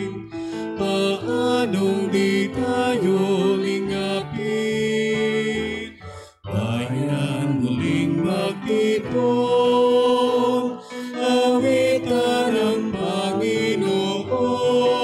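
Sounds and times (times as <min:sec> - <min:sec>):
hymn singing: 0:00.0 - 0:15.0.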